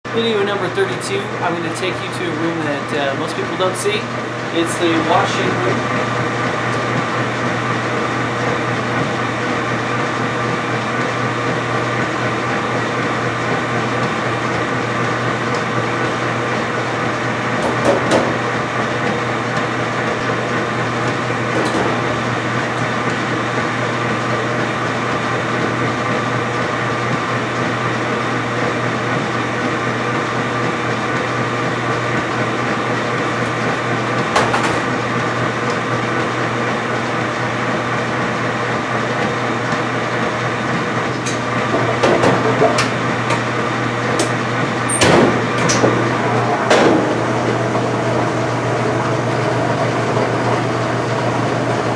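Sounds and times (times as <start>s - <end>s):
laundry machine humming: 0.0s - 51.9s.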